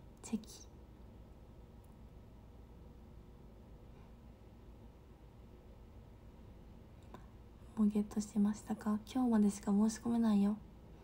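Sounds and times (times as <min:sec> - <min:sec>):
faint low hum: 0:00.0 - 0:11.0
woman saying a word softly: 0:00.2 - 0:00.7.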